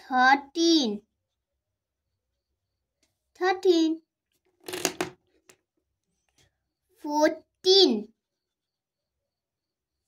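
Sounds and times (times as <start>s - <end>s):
marker pen put down click: 4.6s - 5.6s.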